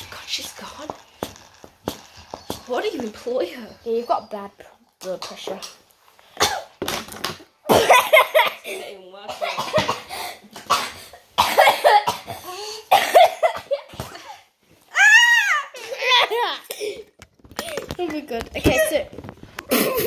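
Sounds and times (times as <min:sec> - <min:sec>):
woman coughing: 0:06.4 - 0:06.8, 0:07.7 - 0:14.5
child squealing: 0:14.9 - 0:16.6.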